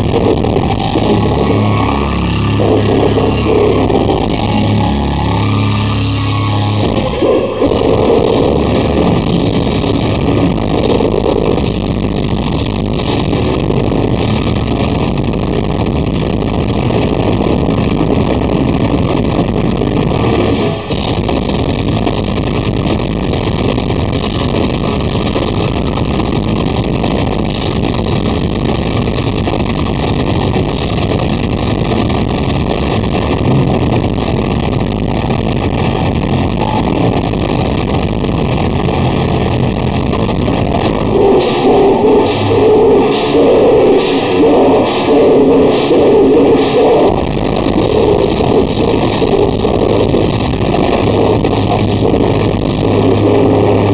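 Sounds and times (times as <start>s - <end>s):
metal band playing live: 0.0s - 25.8s, 35.5s - 53.9s.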